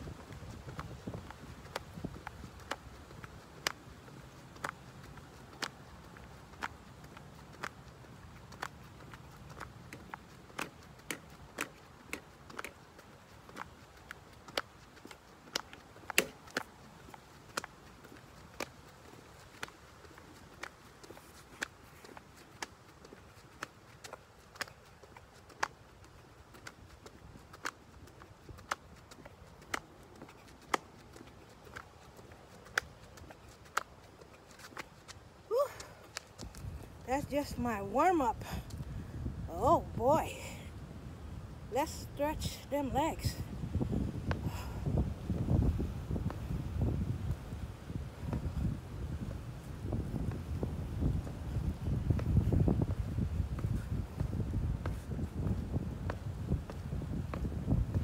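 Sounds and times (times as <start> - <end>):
slaps of jumping jacks: 15.5 - 16.7.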